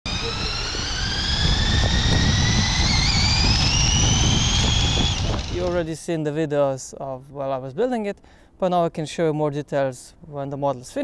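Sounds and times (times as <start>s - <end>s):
electric motors whining: 0.1s - 5.8s
low rumble: 0.1s - 5.9s.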